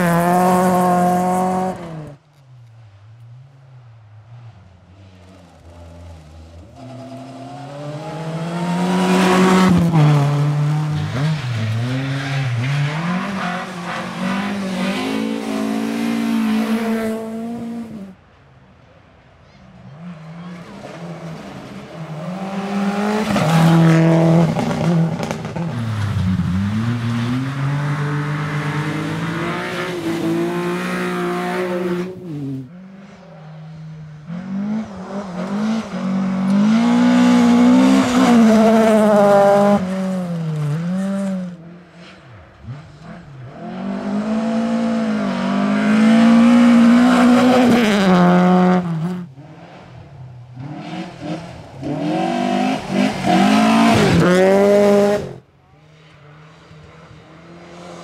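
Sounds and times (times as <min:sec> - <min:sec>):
rally car engine revving: 0:00.0 - 0:02.2, 0:05.4 - 0:18.2, 0:19.9 - 0:33.3, 0:34.2 - 0:55.5.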